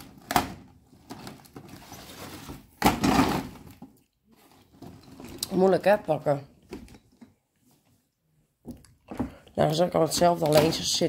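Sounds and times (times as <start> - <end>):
paper and plastic rustling: 0.9 - 5.7, 9.7 - 11.0.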